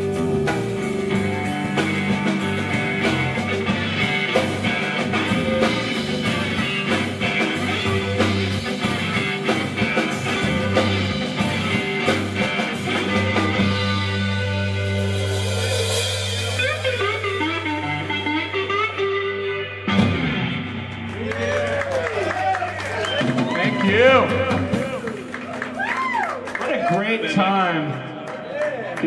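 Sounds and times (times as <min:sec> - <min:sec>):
live rock band playing: 0:00.0 - 0:28.4.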